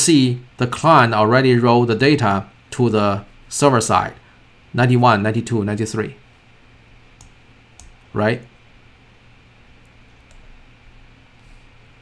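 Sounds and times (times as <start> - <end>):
computer mouse clicks: 7.2 - 8.0, 9.8 - 10.5.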